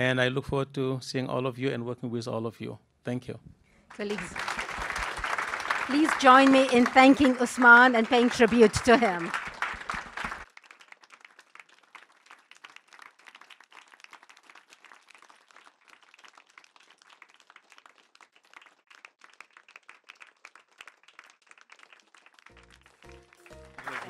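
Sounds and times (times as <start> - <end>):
audience clapping: 3.9 - 24.0
music: 22.5 - 24.0.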